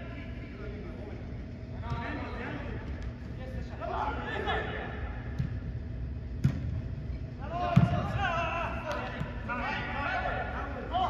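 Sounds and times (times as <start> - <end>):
players shouting: 3.6 - 5.4, 7.4 - 11.0.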